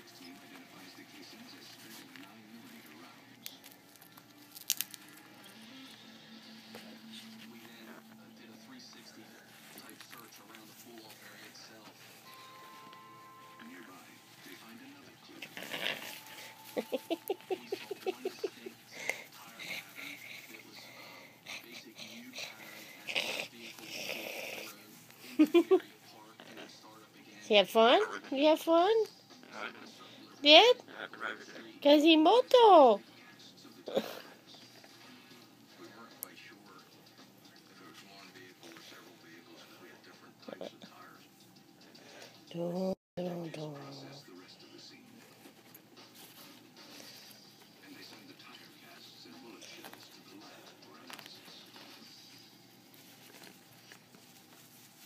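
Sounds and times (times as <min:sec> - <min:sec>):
background music: 0:00.0 - 0:25.8
faint background voices: 0:00.0 - 0:31.9, 0:33.0 - 0:42.5, 0:43.5 - 0:55.0
parrot rustling in cloth toy: 0:00.2 - 0:05.2, 0:09.1 - 0:18.7, 0:45.0 - 0:55.0
faint murmuring voice: 0:05.2 - 0:27.4.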